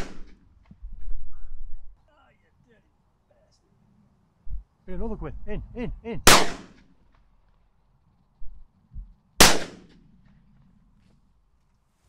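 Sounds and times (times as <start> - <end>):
shotgun shots: 0.0 - 0.4, 6.2 - 6.9, 9.4 - 10.0
low bumps: 0.0 - 2.0, 4.4 - 6.2, 8.3 - 11.6.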